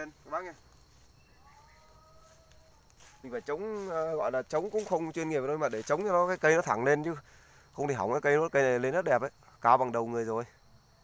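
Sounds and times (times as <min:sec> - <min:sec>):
faint thin bird calls: 0:00.0 - 0:03.5.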